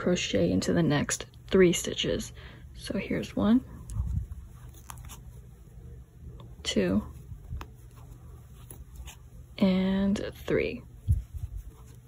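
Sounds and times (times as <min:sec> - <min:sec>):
crochet hook scratching yarn: 0:03.7 - 0:05.5, 0:07.0 - 0:09.4, 0:11.0 - 0:12.0.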